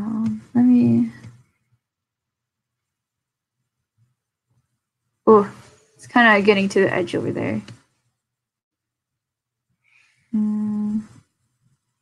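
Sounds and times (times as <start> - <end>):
woman humming: 10.4 - 11.1.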